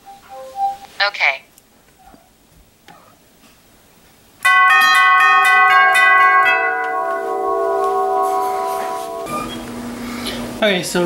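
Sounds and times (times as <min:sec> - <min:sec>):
tubular doorbell chime: 0:04.4 - 0:10.4.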